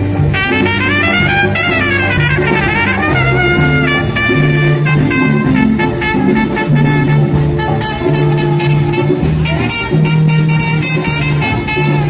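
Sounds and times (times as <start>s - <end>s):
brass and saxophone chord: 0.0s - 12.0s
drum kit: 0.0s - 12.0s.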